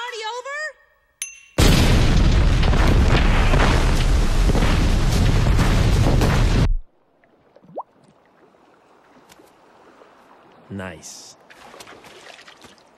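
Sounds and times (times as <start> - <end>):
short ringing ping: 1.2 - 1.6
rumbling explosion blast: 1.6 - 6.9.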